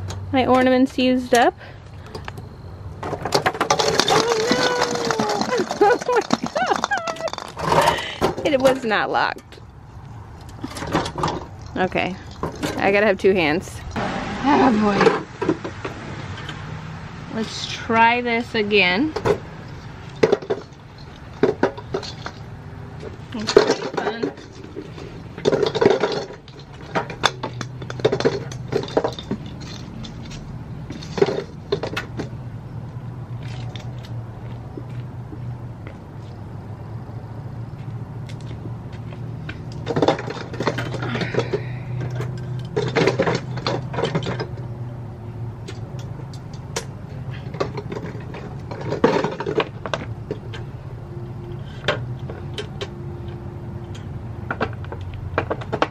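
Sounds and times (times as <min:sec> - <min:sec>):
glass ornaments clinking: 0:03.8 - 0:08.1.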